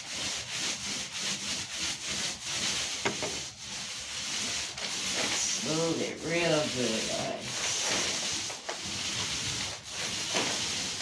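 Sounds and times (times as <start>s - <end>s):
paintbrush strokes on wall: 0.0s - 11.0s.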